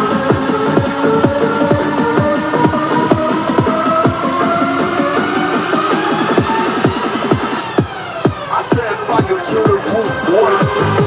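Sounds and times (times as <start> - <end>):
falling synth sweep: 0.0 - 11.0
techno music with kick drum: 0.0 - 11.0
wavering higher synth line: 0.0 - 11.0.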